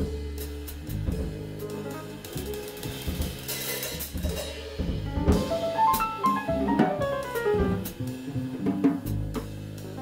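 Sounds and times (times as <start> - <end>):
double bass notes: 0.0 - 3.5, 4.8 - 10.0
cymbals and hi-hat: 0.0 - 10.0
jazz piano trio: 0.0 - 10.0.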